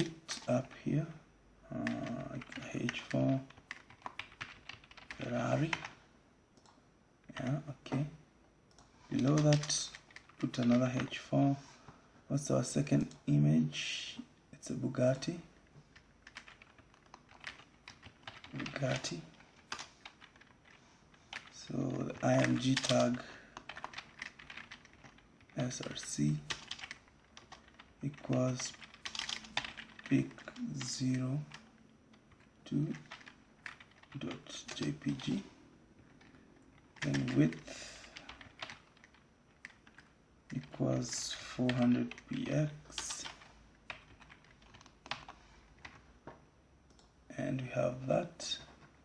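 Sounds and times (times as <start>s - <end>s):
keyboard keys clicking: 1.8s - 5.9s, 15.9s - 21.5s, 22.4s - 25.2s, 26.5s - 30.6s, 31.5s - 35.3s, 36.0s - 37.6s, 38.2s - 40.8s, 43.0s - 46.0s.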